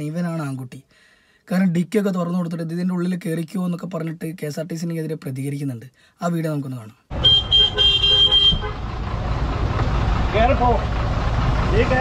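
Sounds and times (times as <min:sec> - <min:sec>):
vehicle horn honking: 0:07.1 - 0:08.9
low rumble of traffic: 0:07.1 - 0:12.0.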